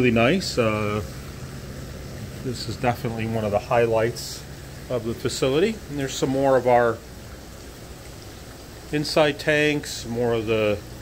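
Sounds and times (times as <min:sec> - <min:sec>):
water rushing through tanks: 0:00.0 - 0:11.0.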